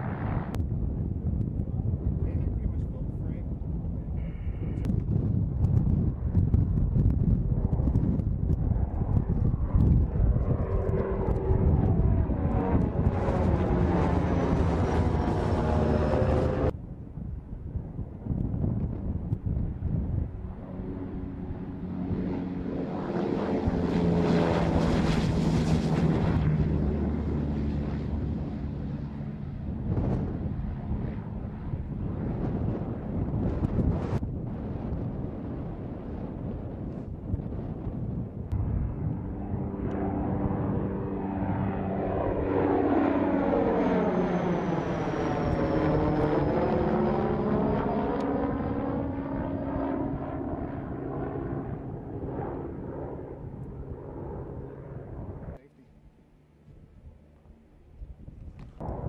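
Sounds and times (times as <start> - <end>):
drone propeller engine: 1.6 - 17.0, 19.0 - 34.3, 35.2 - 59.0.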